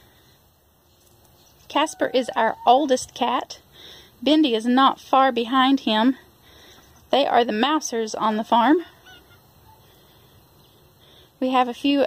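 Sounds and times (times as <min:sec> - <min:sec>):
faint outdoor background: 0:00.0 - 0:12.0
distant bird call: 0:01.4 - 0:03.2, 0:08.9 - 0:10.4.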